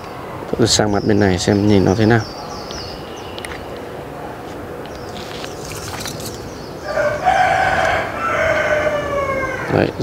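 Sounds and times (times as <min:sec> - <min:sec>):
rooster crowing: 0:06.8 - 0:09.9.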